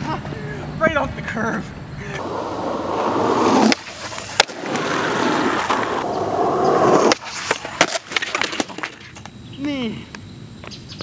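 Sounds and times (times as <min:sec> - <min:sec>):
skateboard wheels rolling on asphalt: 0:00.0 - 0:10.9
skateboard and skater falling: 0:02.1 - 0:09.4
skateboard clack: 0:02.1 - 0:09.4.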